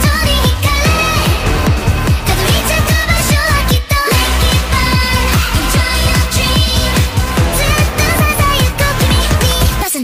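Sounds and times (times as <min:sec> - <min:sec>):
high female vocals: 0:00.0 - 0:10.0
sped-up pop song: 0:00.0 - 0:10.0.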